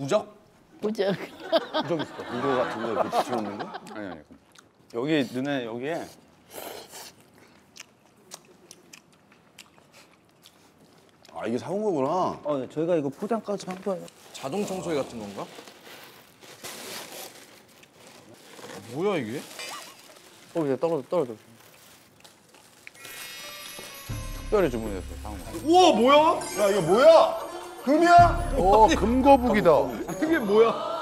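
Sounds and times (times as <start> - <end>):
packaging handling: 15.3 - 24.1
shimmering glittery music sting: 23.0 - 30.6.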